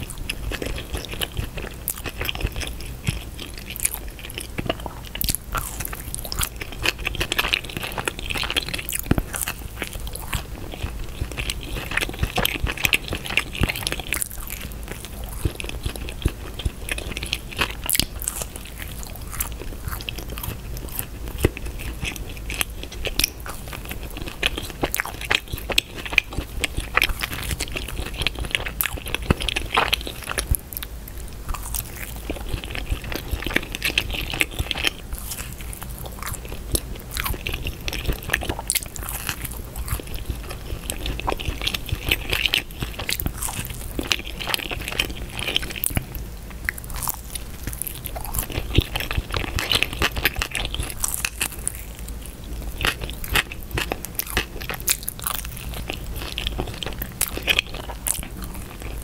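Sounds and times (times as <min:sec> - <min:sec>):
pizza crust crunching: 0:00.0 - 0:59.0.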